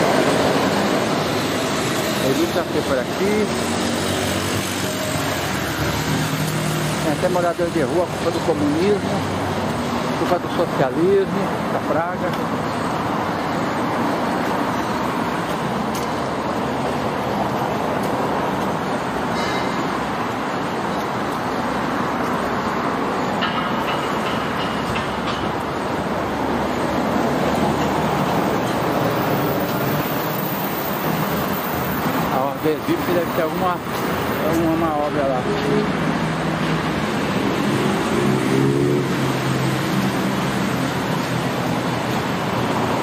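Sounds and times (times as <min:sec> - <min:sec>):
road traffic passing: 0:00.0 - 0:43.0.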